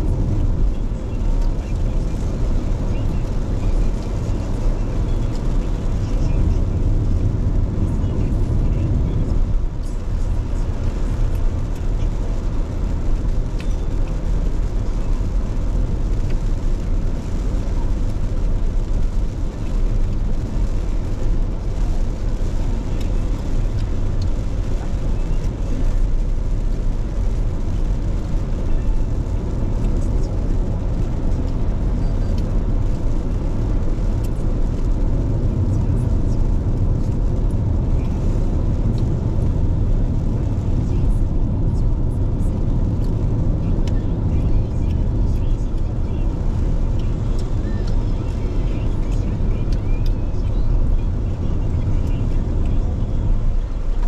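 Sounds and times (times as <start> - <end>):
engine and tyres rumbling: 0.0 - 54.0
tyres hissing on wet road: 0.0 - 54.0.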